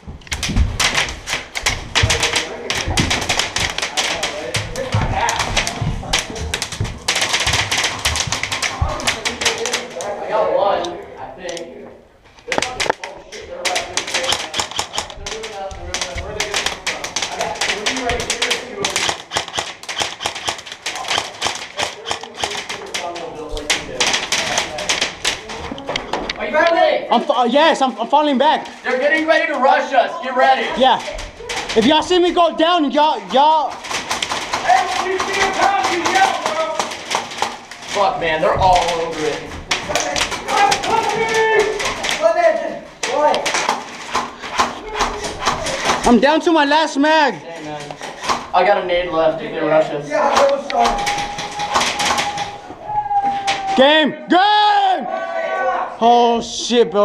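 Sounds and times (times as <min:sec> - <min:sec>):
balls hitting building: 0:00.0 - 0:10.2, 0:12.5 - 0:26.3, 0:30.9 - 0:46.2
paintball markers firing: 0:00.2 - 0:10.2, 0:12.5 - 0:25.8, 0:33.2 - 0:42.3, 0:50.3 - 0:52.6.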